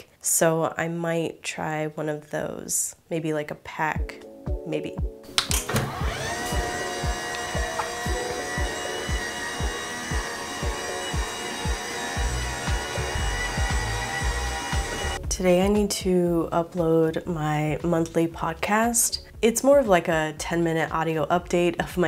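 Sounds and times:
background music with a beat: 4.0s - 17.0s
desk motor whine: 5.6s - 15.2s.

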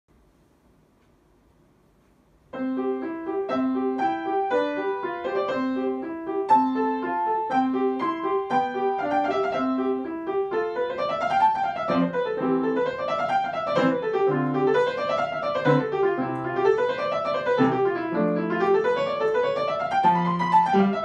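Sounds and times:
upright piano playing: 2.5s - 21.0s.

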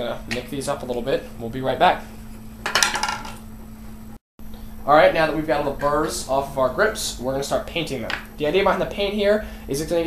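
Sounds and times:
tools clattering on wooden bench: 2.6s - 3.4s.

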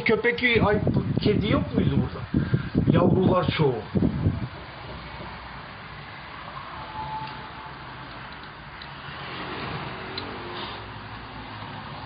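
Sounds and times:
distant street traffic hum: 3.7s - 12.0s
vehicle passing: 4.7s - 12.0s.

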